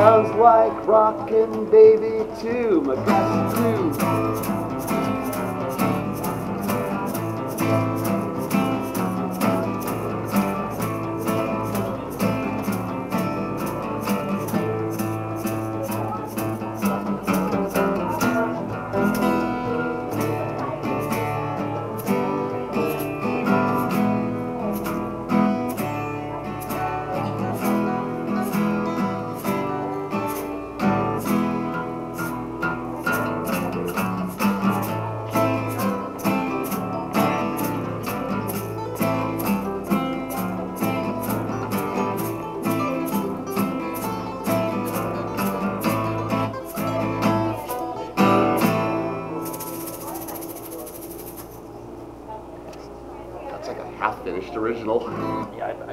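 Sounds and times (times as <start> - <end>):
acoustic guitar playing: 0.0 - 55.9.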